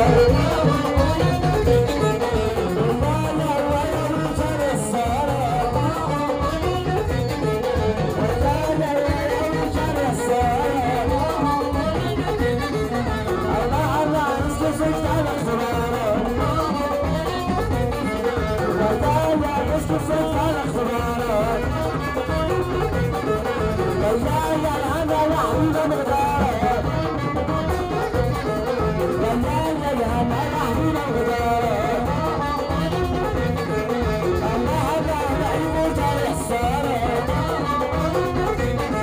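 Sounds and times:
folk band playing through loudspeakers: 0.0s - 39.0s
frame drums beating: 0.0s - 39.0s
lute melody: 0.0s - 39.0s.

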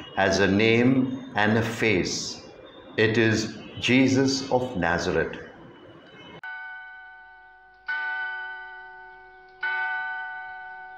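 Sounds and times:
bell chimes ringing: 5.8s - 10.9s.

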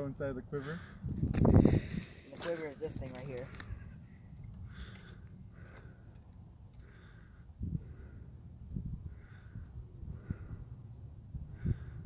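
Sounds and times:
soft breaths: 3.5s - 10.9s.

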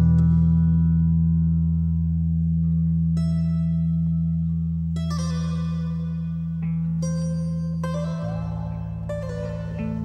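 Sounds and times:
bass guitar low note: 0.0s - 10.0s.

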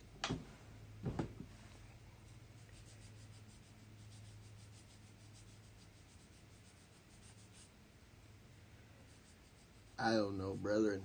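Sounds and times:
low steady hum: 0.0s - 11.0s
faint soft rubbing: 1.5s - 7.7s, 8.8s - 10.3s.

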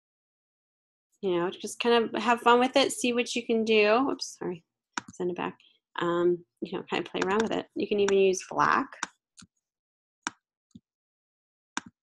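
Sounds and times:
computer input clicks: 7.2s - 7.5s.

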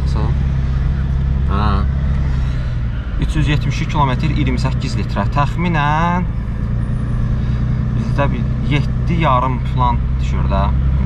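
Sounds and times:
diesel engine drone in cabin: 0.0s - 11.0s
road noise: 0.0s - 11.0s
spoken syllable: 1.5s - 1.9s.

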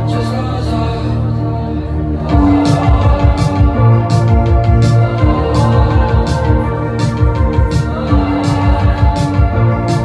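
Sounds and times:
deep bass: 0.0s - 10.0s.

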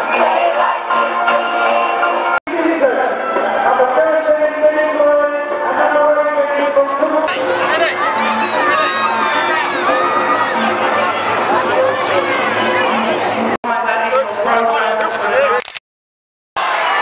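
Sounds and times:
crowd talking and calling out: 0.0s - 15.7s
music with long held notes: 5.4s - 13.6s.

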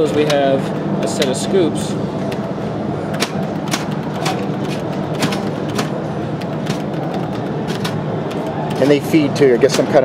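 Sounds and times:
steady background din: 0.0s - 10.0s
pinball solenoid clicks: 2.3s - 9.0s.

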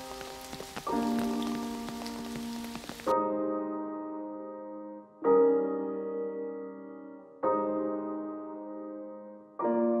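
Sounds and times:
rain falling on a puddle: 0.0s - 3.1s
soft music with held chords: 0.0s - 10.0s.

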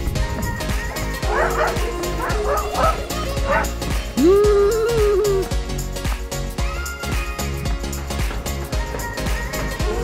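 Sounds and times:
background music with steady beat: 0.0s - 10.0s
dog yelping barks: 1.2s - 3.8s.

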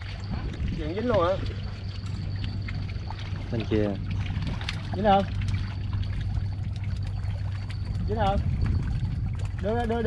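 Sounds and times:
faint water noise: 0.0s - 10.0s
low mechanical hum: 0.0s - 10.0s.

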